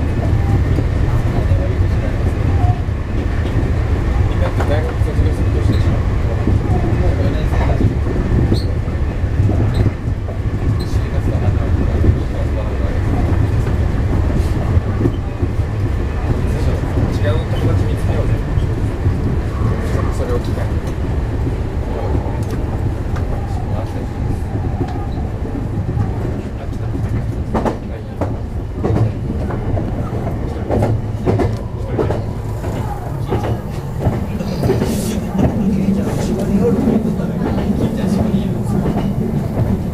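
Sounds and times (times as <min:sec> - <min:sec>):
train wheels rumbling on rail: 0:00.0 - 0:39.9.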